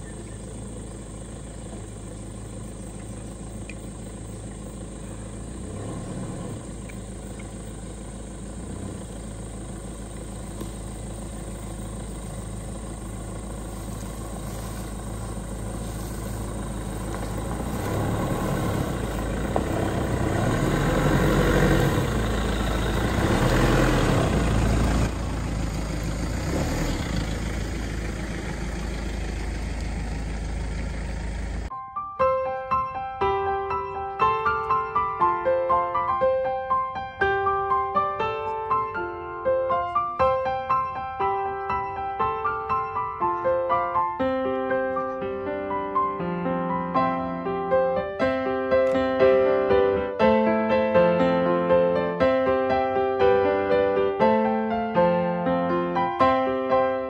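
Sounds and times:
engine running: 0.0s - 31.7s, 43.3s - 46.9s.

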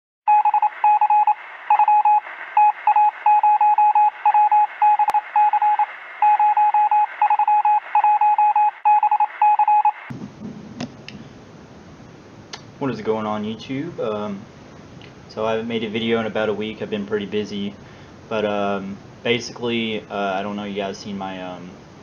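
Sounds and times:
morse code beeps: 0.3s - 10.1s
steady radio hiss: 10.1s - 22.0s.

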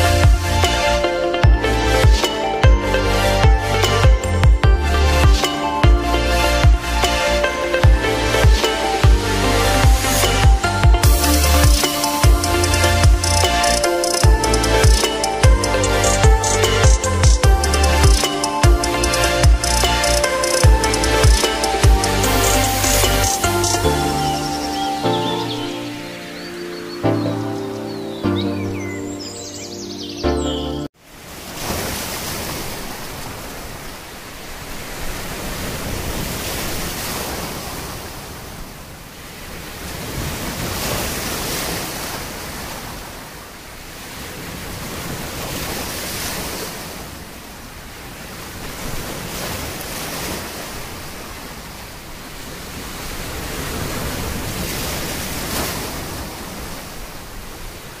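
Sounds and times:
music: 0.0s - 30.9s.

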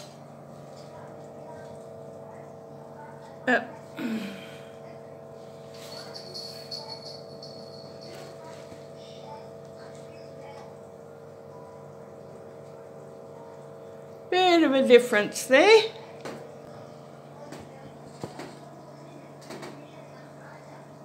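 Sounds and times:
steady room hum: 0.0s - 21.0s.

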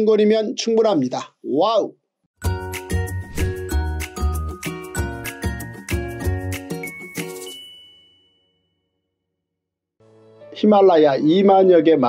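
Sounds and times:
music jingle: 2.4s - 8.9s
high bell-like ding: 6.9s - 8.8s.

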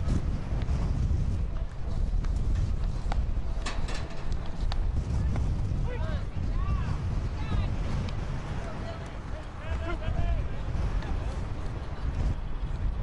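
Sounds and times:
wind rumbling on microphone: 0.0s - 13.0s
faint crowd voices: 2.9s - 13.0s.

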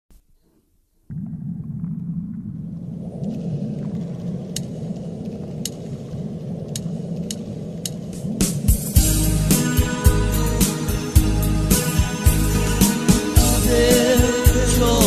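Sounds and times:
steady low rumble: 1.0s - 12.8s
sharp clicks: 4.5s - 8.6s.

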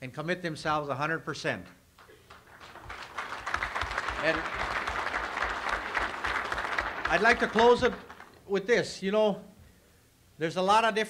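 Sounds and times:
audience applauding: 2.0s - 8.4s.

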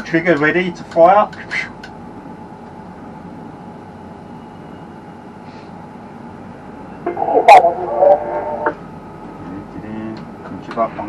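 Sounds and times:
steady cab hum: 6.1s - 9.6s
two-way radio transmission: 7.0s - 8.8s
sharp radio click: 7.1s - 8.8s.

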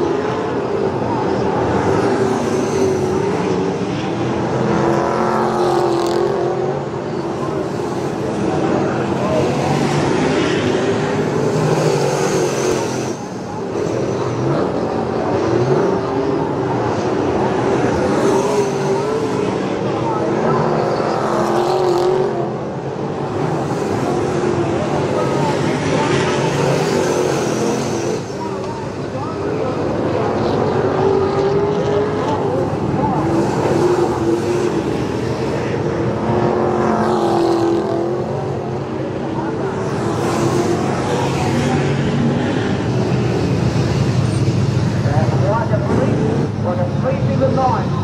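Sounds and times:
race car engines revving: 0.0s - 48.0s.

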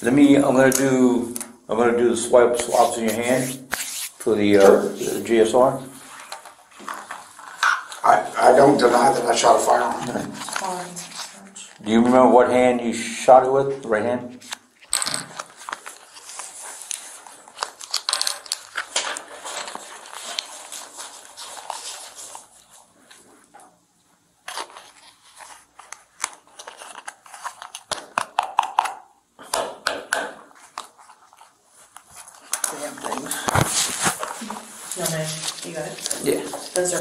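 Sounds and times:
packaging crinkling and rustling: 6.0s - 11.8s, 14.4s - 23.2s, 24.4s - 29.0s, 30.5s - 37.0s.

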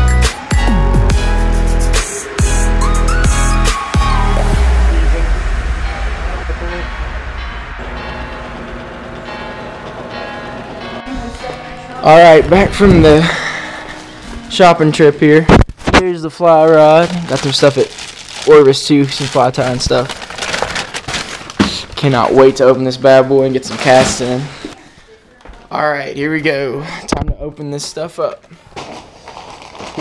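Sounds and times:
plastic bag crinkling: 16.5s - 22.1s, 28.7s - 30.0s.

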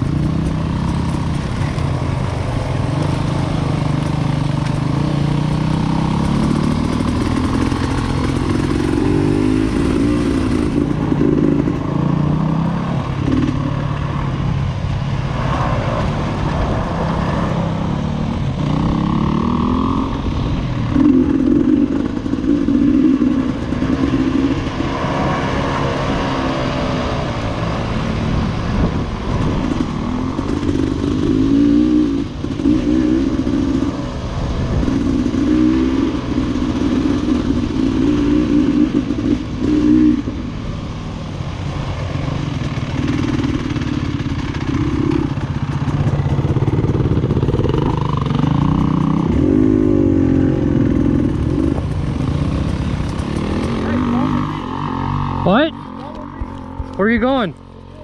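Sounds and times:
two-stroke motorbike engine revving: 0.0s - 14.1s, 16.1s - 40.5s, 41.5s - 58.0s.

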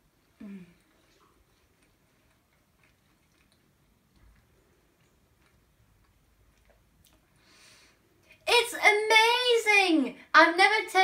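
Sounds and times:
person quietly chewing: 0.0s - 8.4s.

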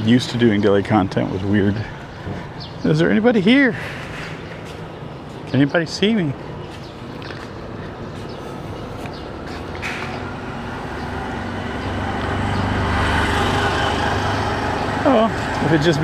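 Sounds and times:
vehicle passing by: 7.3s - 16.0s.

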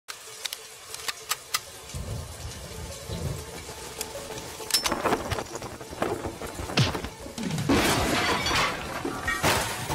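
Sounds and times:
heavy rain falling: 0.1s - 9.9s.

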